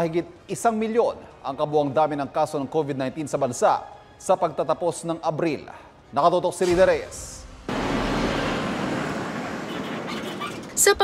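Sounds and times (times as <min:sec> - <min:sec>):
road traffic noise: 0:06.8 - 0:11.0.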